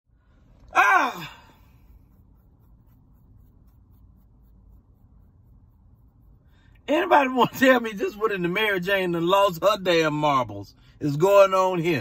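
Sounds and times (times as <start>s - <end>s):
car interior hum: 0.2s - 12.0s
man sighing exclamation: 0.7s - 1.7s.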